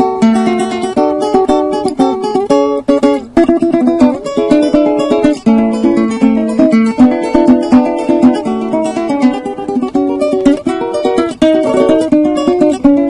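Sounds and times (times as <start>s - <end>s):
plucked and strummed string instrument: 0.0s - 13.0s.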